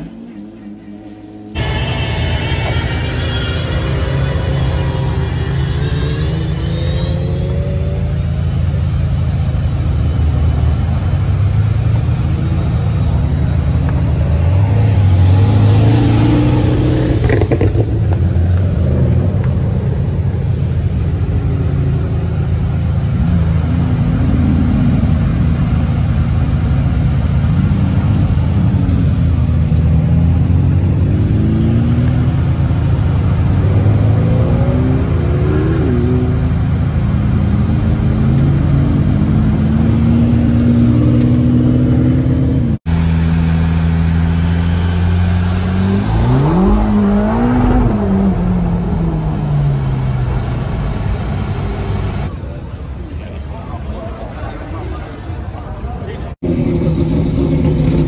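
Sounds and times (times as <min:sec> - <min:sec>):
car engine revving: 0:00.0 - 0:52.4, 0:56.3 - 0:58.0
car engines at low speed: 0:00.0 - 0:58.0.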